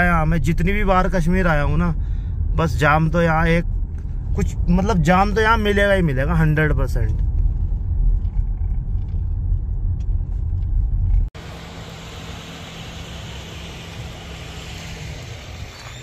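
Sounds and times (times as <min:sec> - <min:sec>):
car engine and tyres rumbling: 0:00.0 - 0:16.0
idling vehicles humming: 0:00.0 - 0:16.0
outdoor traffic noise: 0:00.0 - 0:16.0.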